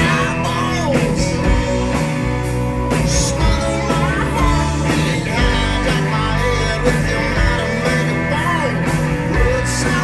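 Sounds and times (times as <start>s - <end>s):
bass guitar: 0.0s - 10.0s
drums: 0.0s - 10.0s
electric guitars: 0.0s - 10.0s.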